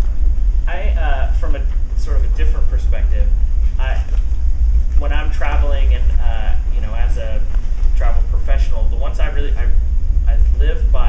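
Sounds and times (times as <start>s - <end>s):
low rumble: 0.0s - 11.0s
man talking: 0.7s - 4.2s, 5.0s - 11.0s.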